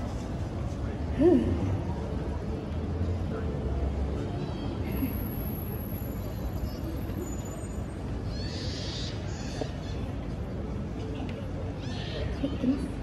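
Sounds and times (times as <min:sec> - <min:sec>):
faint voices of passers-by: 0:00.0 - 0:13.0
traffic rumble: 0:00.0 - 0:13.0.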